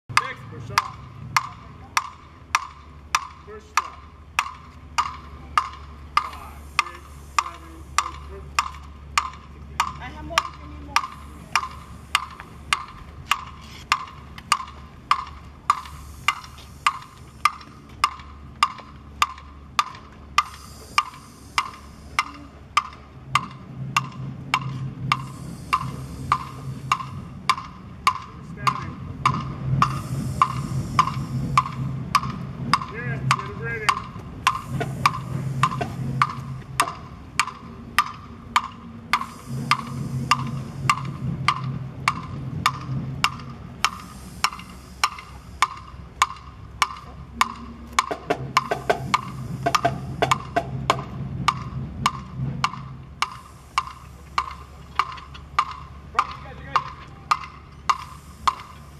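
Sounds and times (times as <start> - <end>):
wood block clicks: 0.1 - 58.9.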